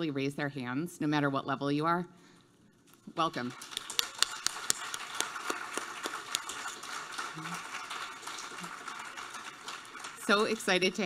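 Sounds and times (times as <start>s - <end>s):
audience applauding: 3.5s - 11.0s.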